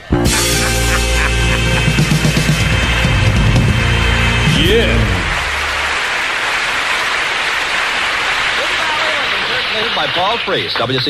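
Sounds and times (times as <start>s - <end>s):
band low note: 0.0s - 6.1s
audience applauding: 1.1s - 11.0s.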